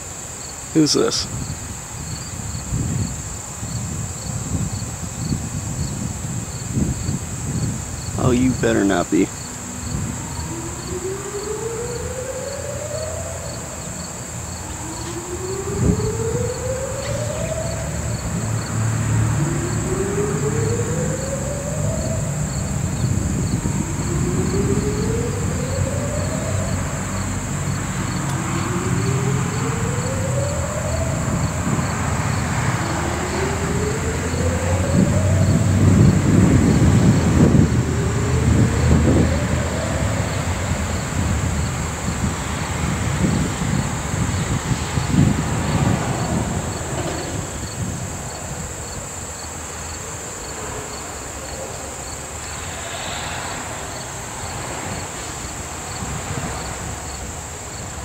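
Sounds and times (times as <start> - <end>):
insects trilling: 0.0 - 58.0
faint rising tone: 8.6 - 47.6.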